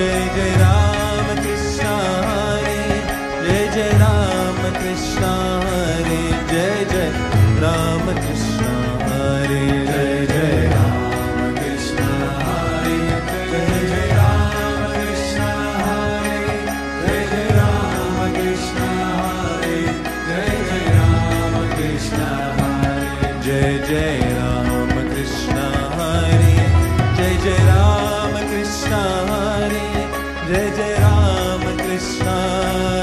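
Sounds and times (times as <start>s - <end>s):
devotional chanting: 0.0s - 33.0s
held instrumental tones: 0.0s - 33.0s.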